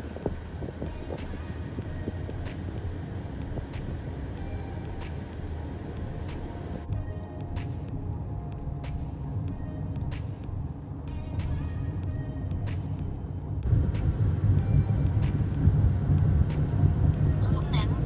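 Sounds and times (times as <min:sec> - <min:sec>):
car road and engine rumble: 0:00.0 - 0:18.0.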